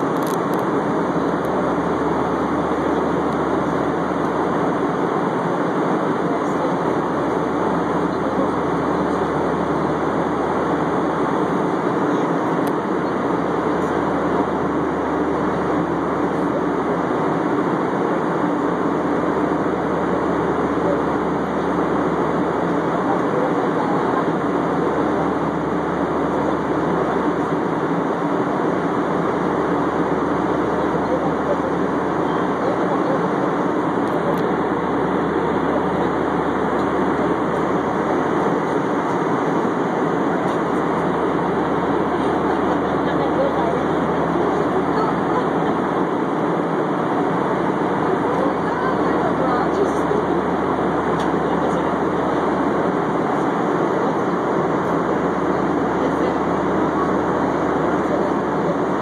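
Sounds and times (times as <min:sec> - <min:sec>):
airliner cabin noise: 0:00.0 - 0:59.0.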